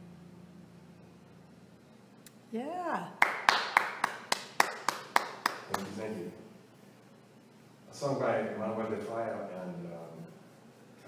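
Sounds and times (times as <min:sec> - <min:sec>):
person clapping: 0:03.2 - 0:05.9.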